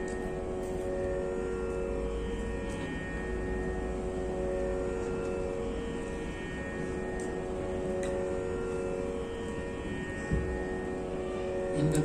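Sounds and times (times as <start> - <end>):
steady musical drone: 0.0 - 12.0.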